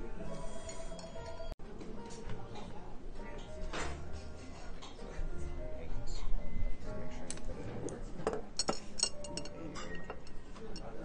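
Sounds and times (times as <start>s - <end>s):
tableware clicking and clinking: 8.2s - 11.0s.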